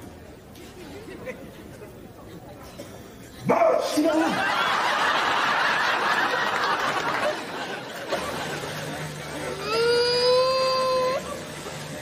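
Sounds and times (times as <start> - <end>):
studio audience laughter: 0.8 - 2.0, 4.1 - 9.5, 11.2 - 12.0.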